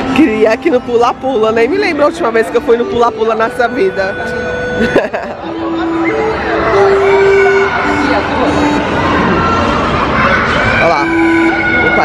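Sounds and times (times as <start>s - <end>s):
people talking: 0.0s - 9.4s
electronic floor piano notes: 0.0s - 9.6s.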